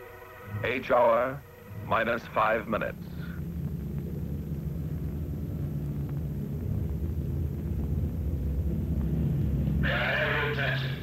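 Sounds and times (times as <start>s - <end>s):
piston aircraft engines droning: 0.0s - 11.0s.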